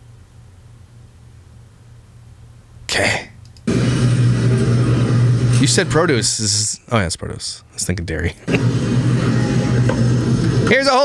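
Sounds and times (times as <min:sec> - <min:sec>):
low steady hum: 0:00.0 - 0:11.0
person saying okay: 0:02.9 - 0:03.3.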